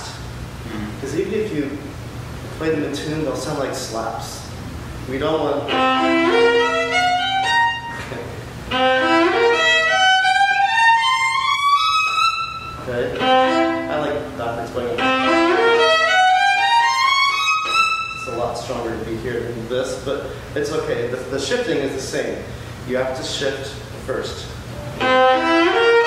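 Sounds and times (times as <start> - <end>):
solo viola rising runs: 5.5 - 8.1, 8.7 - 18.3, 24.7 - 26.0.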